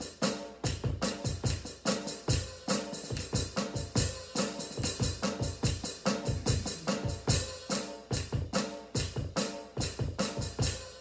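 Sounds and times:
drum kit groove: 0:00.0 - 0:11.0
bass drum thumps: 0:04.8 - 0:07.5.

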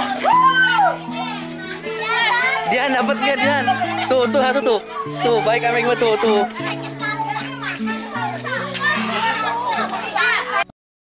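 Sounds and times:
background music low notes: 0:00.0 - 0:10.7
children and women shouting: 0:00.0 - 0:10.7.

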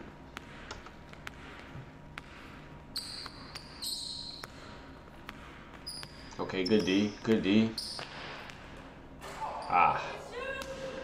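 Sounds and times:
sneaker squeaks: 0:02.3 - 0:10.8.

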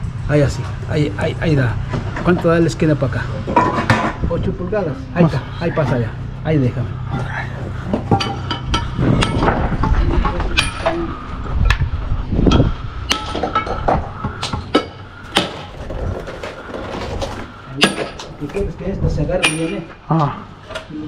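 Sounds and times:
masonry tools clinking on stone: 0:07.9 - 0:09.4, 0:10.2 - 0:11.0, 0:17.8 - 0:18.6, 0:19.4 - 0:20.0.

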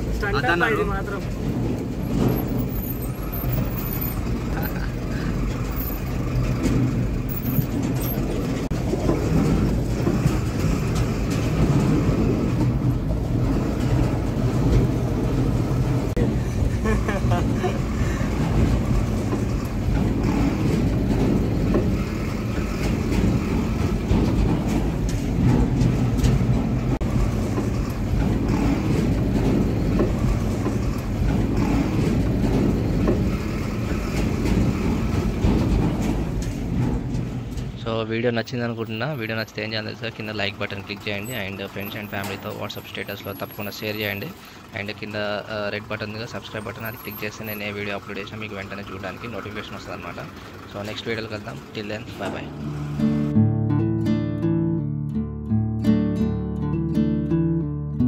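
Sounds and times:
vehicle engine drone in cab: 0:00.0 - 0:38.0, 0:39.5 - 0:53.4.

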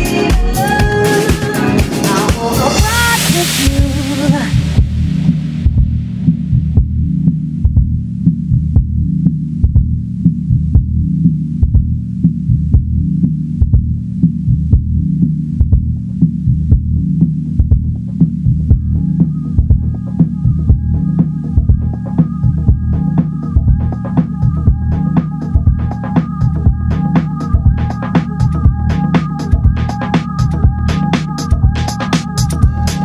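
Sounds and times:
muffled bass line and kick beat: 0:00.0 - 0:33.0.

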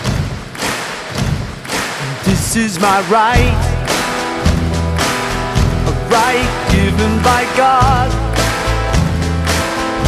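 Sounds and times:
thumping drum beat: 0:00.0 - 0:08.2.

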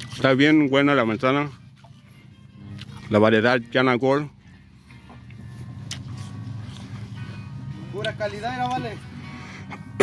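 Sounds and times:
engine humming: 0:04.1 - 0:10.0.

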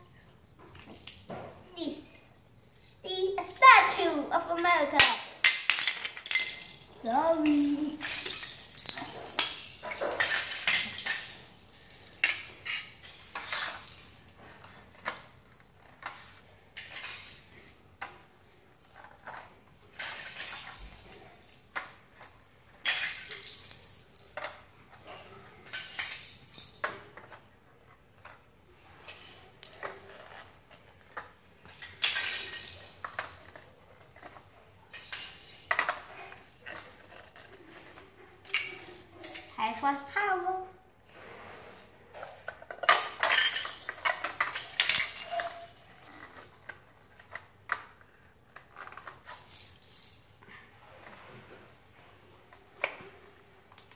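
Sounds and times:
plastic toy figures clattering: 0:02.6 - 0:18.2, 0:18.8 - 0:40.4, 0:41.7 - 0:53.9.

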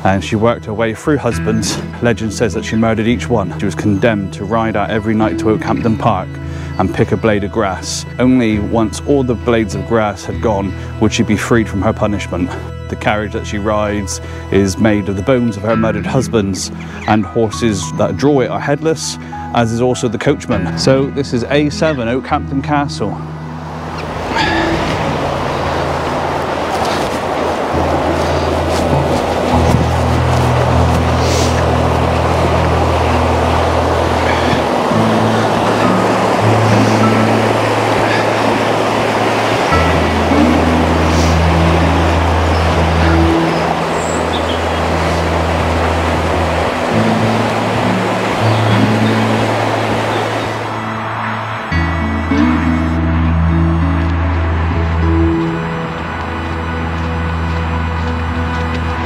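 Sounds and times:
river rushing over rocks: 0:23.2 - 0:59.0
slow low held music notes: 0:24.4 - 0:59.0.

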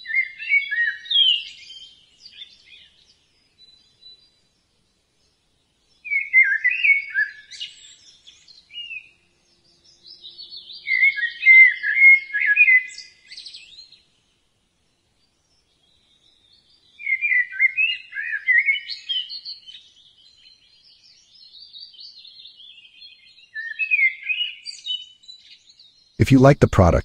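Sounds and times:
songbird warbling chirps: 0:00.0 - 0:04.6, 0:05.9 - 0:14.0, 0:15.4 - 0:26.2.

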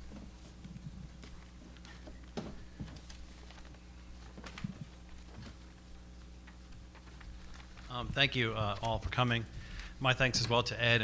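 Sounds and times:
low steady sound system hum: 0:00.0 - 0:11.0.

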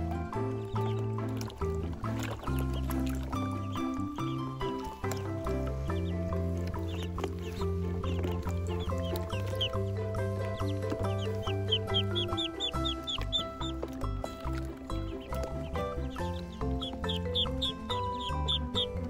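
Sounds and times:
background music with bass line: 0:00.0 - 0:19.0
duckling peeps: 0:00.0 - 0:19.0.

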